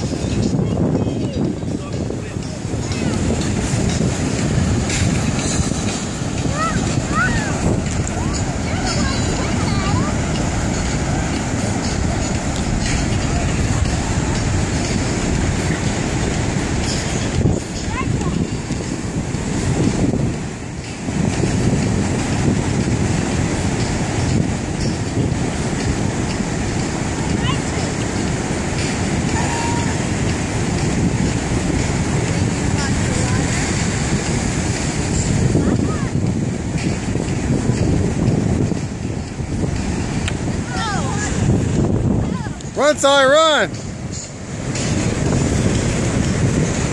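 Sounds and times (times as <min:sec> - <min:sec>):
ocean surf: 0:00.0 - 0:46.9
wind buffeting microphone: 0:00.0 - 0:46.9.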